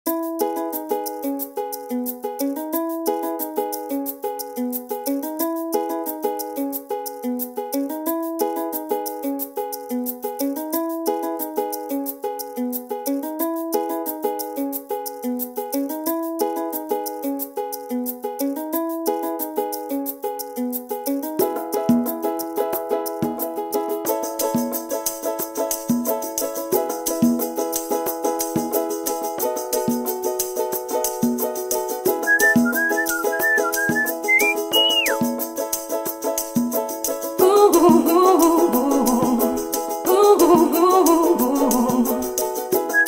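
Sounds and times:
light bright background music: 0.1s - 43.0s
ticking beat: 32.0s - 35.5s.

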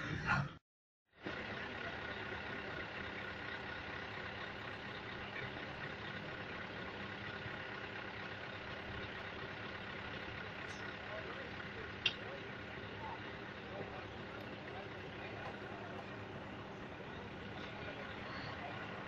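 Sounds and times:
truck diesel engine idling: 1.1s - 19.0s.

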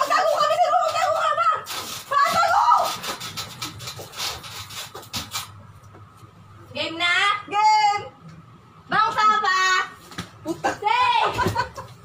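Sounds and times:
rubbing and scraping against bedding: 0.0s - 6.1s.

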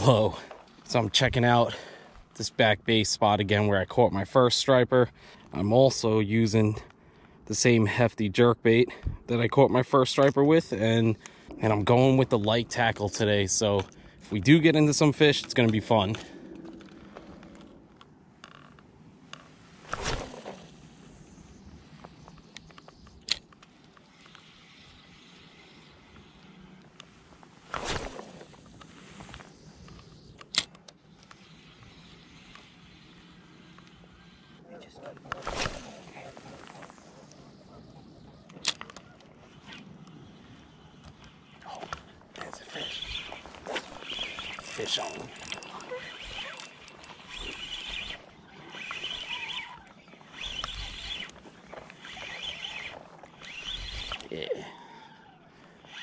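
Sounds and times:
reel cranking: 18.4s - 18.8s, 42.7s - 54.4s, 55.8s - 56.0s
fishing rod cast swish: 19.8s - 21.1s, 27.7s - 28.6s, 35.3s - 36.2s
reel bail click: 43.7s - 54.3s.

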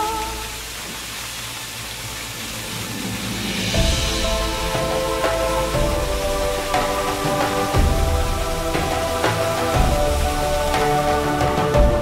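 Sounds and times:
stream rushing over rocks: 0.0s - 12.0s.

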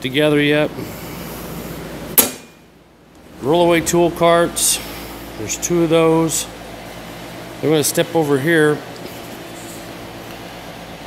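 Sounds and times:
sharp knock: 2.2s - 2.6s.

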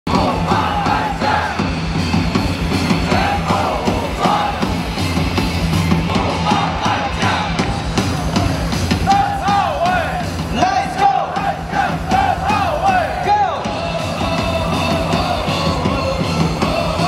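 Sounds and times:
crowd chanting and shouting: 0.0s - 17.0s
cheer song over loudspeakers: 0.1s - 17.0s.

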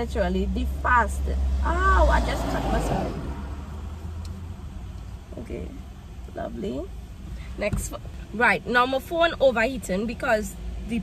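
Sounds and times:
car engine idling: 0.0s - 11.0s.

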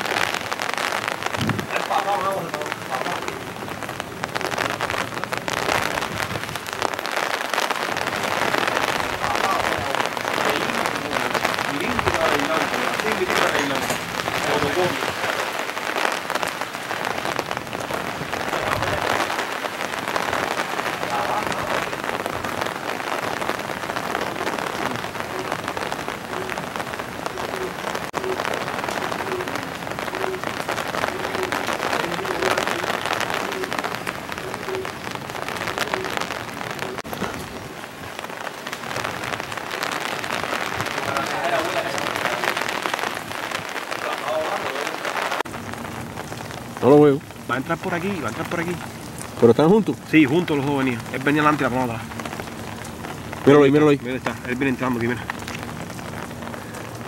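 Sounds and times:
rain on a fabric umbrella: 0.0s - 57.0s.

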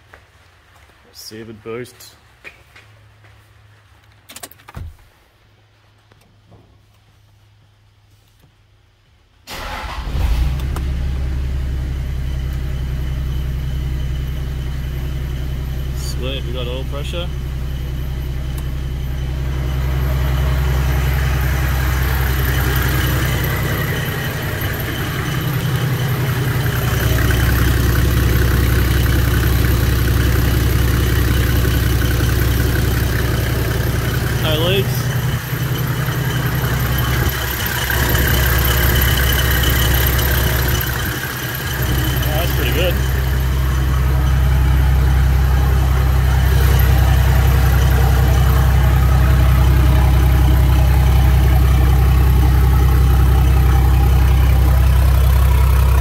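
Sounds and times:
diesel engine idling: 9.5s - 56.0s
turbo whine: 9.8s - 56.0s.

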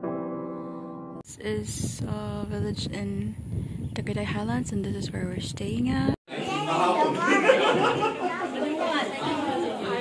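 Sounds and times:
group chatter: 6.3s - 10.0s.

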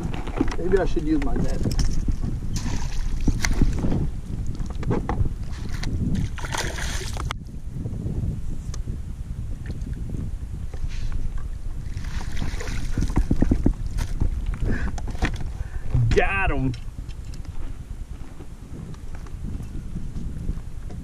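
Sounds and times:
wind rumble on microphone: 0.0s - 21.0s
fish thrashing and water splashing: 1.7s - 3.9s, 5.4s - 7.4s, 11.8s - 15.6s.

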